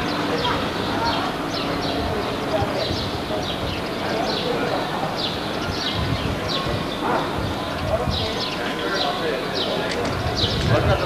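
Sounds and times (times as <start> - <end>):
crowd murmuring: 0.0 - 11.0.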